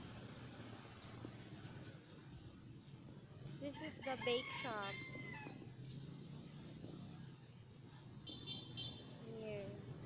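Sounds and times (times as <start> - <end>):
low hum of street background: 0.0 - 10.0
rooster crowing: 4.0 - 5.6.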